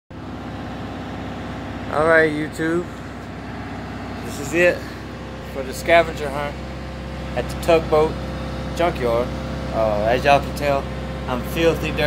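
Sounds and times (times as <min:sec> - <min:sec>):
engine idling: 0:00.1 - 0:12.0.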